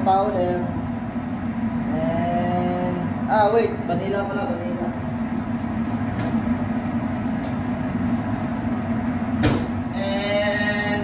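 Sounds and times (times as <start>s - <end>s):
kitchen machinery humming: 0.0s - 11.0s
sharp knock: 9.4s - 9.7s.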